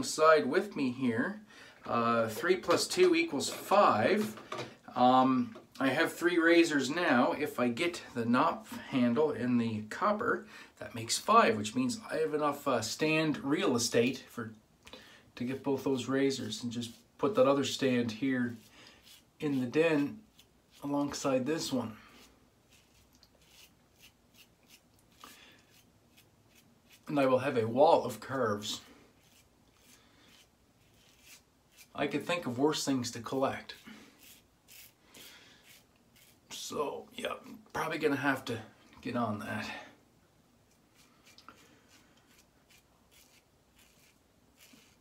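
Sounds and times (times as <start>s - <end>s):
razor scraping stubble: 18.2s - 27.4s, 28.3s - 32.5s, 33.3s - 36.6s, 40.7s - 45.0s.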